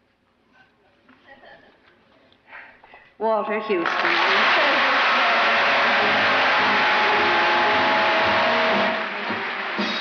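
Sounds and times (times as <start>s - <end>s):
audience applauding: 3.6s - 10.0s
band playing: 4.8s - 10.0s.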